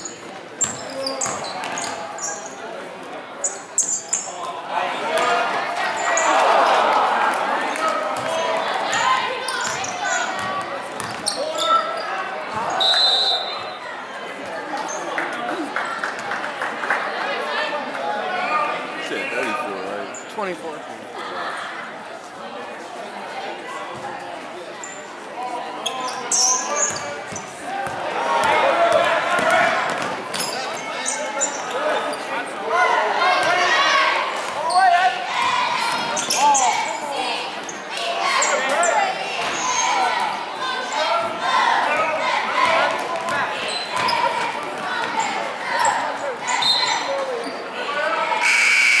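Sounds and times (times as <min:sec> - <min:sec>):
sneakers squeaking on court: 0:00.0 - 0:02.6, 0:09.5 - 0:12.8, 0:25.8 - 0:28.0, 0:43.2 - 0:44.4
high shoe squeak: 0:00.6 - 0:02.6, 0:03.4 - 0:04.4, 0:11.0 - 0:13.8, 0:25.8 - 0:27.5, 0:46.5 - 0:47.6
basketball bouncing: 0:10.4 - 0:11.2
referee's whistle: 0:12.7 - 0:13.8, 0:46.6 - 0:47.0, 0:48.4 - 0:49.0
shouting voices echoing: 0:30.6 - 0:49.0.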